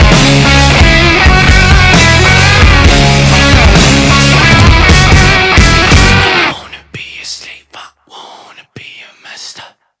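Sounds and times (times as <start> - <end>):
person whispering: 6.4 - 10.0.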